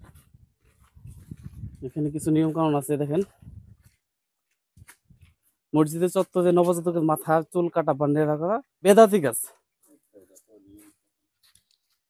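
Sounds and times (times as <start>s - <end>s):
footsteps on dirt path: 0.0s - 7.4s, 8.6s - 12.0s
man speaking: 1.8s - 3.3s, 5.8s - 11.0s.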